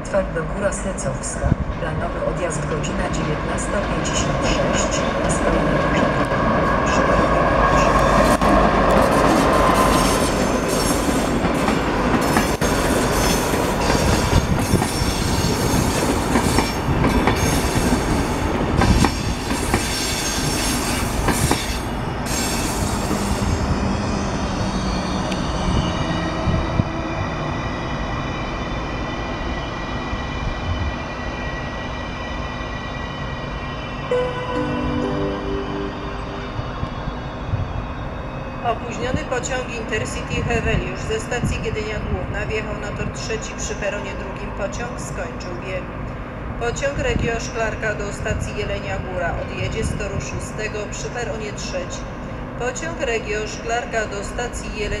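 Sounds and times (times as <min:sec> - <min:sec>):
train rumble: 0:00.0 - 0:32.0
train wheels squealing: 0:12.4 - 0:16.8, 0:18.8 - 0:26.5.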